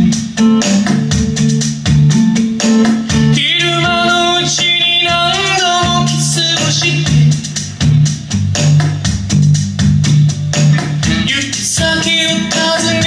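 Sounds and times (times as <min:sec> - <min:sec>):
acoustic guitar strummed: 0:00.0 - 0:13.0
man singing: 0:03.4 - 0:07.6, 0:11.2 - 0:13.0.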